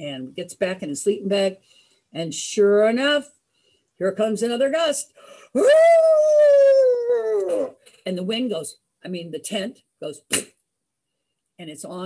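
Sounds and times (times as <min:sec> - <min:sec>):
woman imitating wind: 0:05.6 - 0:07.7.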